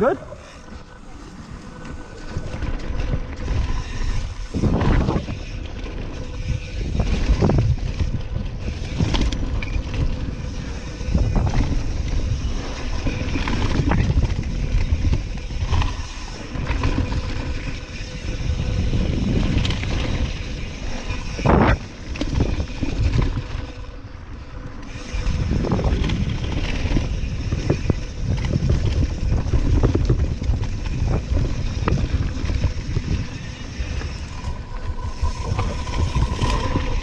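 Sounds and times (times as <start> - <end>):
tyres rolling on dirt trail: 0.0 - 37.0
wind rushing over microphone: 0.0 - 37.0
bike knocking and rattling: 0.6 - 37.0.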